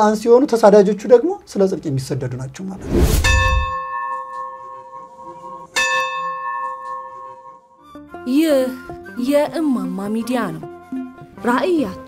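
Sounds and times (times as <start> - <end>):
bell ringing: 3.2 - 5.0.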